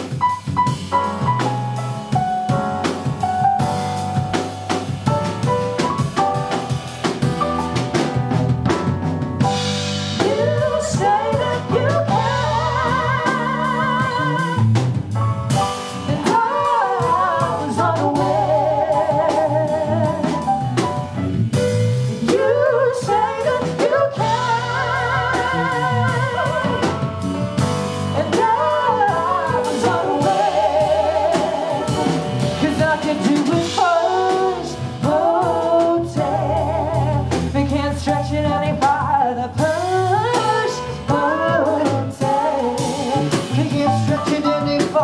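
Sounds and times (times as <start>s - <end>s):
drum kit: 0.0s - 45.0s
electric bass: 0.0s - 45.0s
piano: 0.0s - 45.0s.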